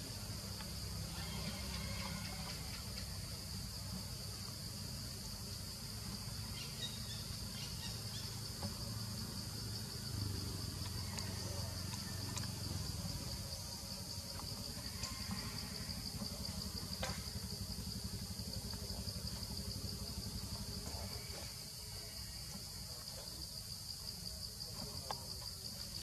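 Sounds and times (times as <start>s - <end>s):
insects droning: 0.0s - 26.0s.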